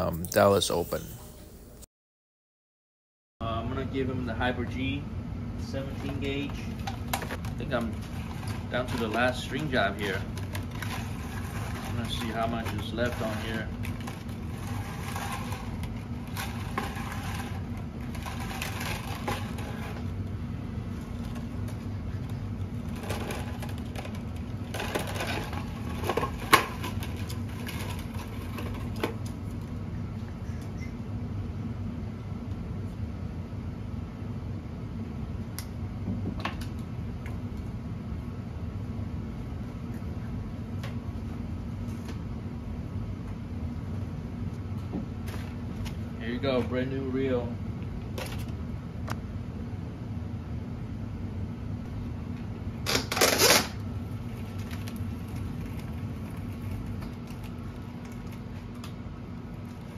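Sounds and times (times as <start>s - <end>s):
steady low hum: 0.0s - 1.9s, 3.4s - 59.9s
string rustling and scraping: 5.8s - 20.2s, 20.9s - 29.6s.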